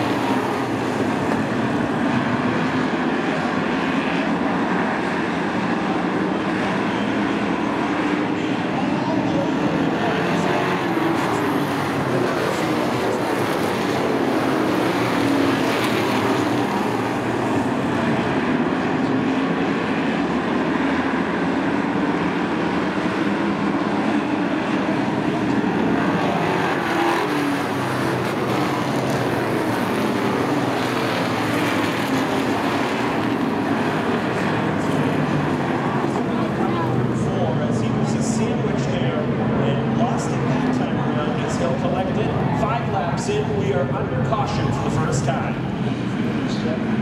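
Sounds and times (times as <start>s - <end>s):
race car engines droning: 0.0s - 47.0s.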